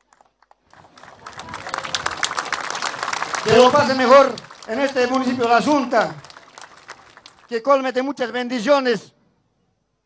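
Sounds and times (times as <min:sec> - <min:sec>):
crowd applauding: 0:00.0 - 0:07.7.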